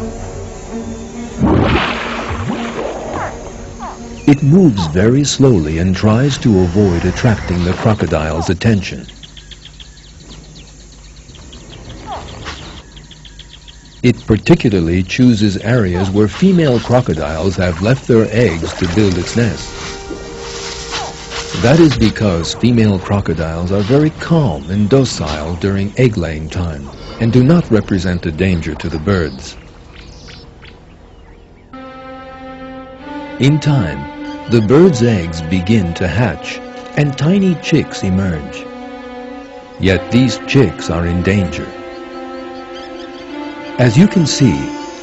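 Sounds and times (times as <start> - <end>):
soft background music: 0.0 - 9.1, 10.6 - 45.0
insects chirping: 0.0 - 45.0
faint bird chirps: 8.9 - 14.4, 26.8 - 31.8.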